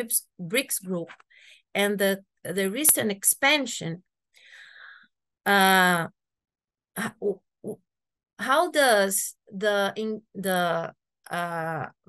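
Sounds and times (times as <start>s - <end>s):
woman's voice over video call: 0.0s - 4.1s, 5.4s - 6.2s, 7.0s - 7.8s, 8.4s - 12.0s.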